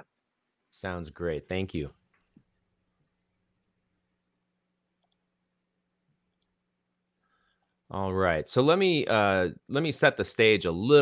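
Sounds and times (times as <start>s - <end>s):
faint clicks: 5.0s - 5.2s, 6.3s - 6.6s.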